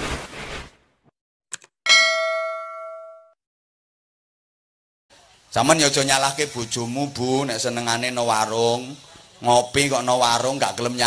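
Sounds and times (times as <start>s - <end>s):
metallic bell ding: 1.9s - 3.4s.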